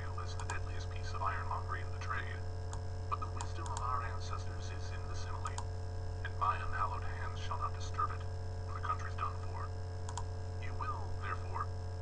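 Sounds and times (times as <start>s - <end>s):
sped up audiobook narration: 0.0s - 2.5s, 3.1s - 5.6s, 6.2s - 9.8s, 10.6s - 11.7s
steady electrical hum: 0.0s - 12.0s.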